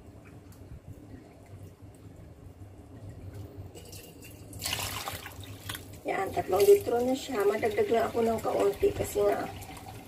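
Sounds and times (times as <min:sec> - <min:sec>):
water splashing into a pot: 0:03.3 - 0:10.0.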